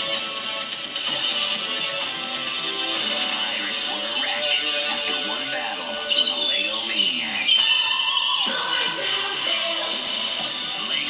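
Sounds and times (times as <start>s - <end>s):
upbeat music: 0.0s - 11.0s.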